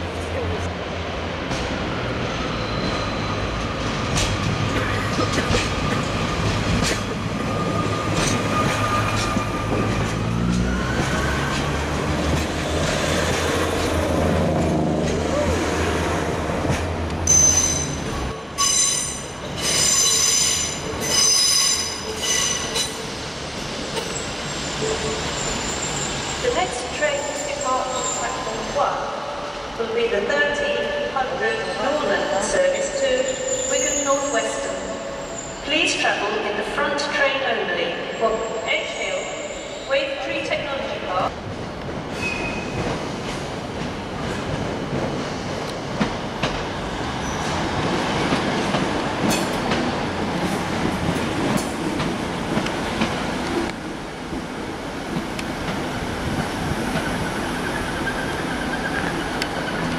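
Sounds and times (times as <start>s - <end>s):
train wheels squealing on track: 2.3s - 4.3s, 7.0s - 11.8s, 17.3s - 23.2s, 23.8s - 28.7s, 32.9s - 35.7s, 42.1s - 42.9s, 47.2s - 47.6s, 56.9s - 59.9s.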